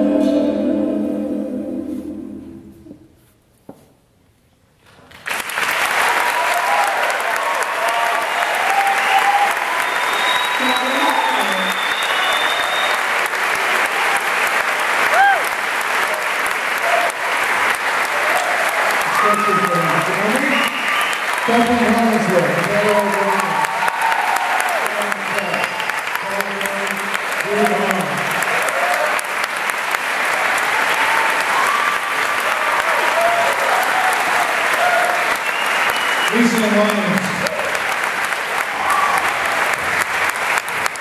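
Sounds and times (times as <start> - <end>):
vocal ensemble holding chord: 0.0 - 3.1
audience applause: 5.0 - 41.0
whistles and cheers: 5.9 - 17.3, 18.0 - 21.9, 22.9 - 26.2, 30.3 - 37.8, 38.5 - 39.8.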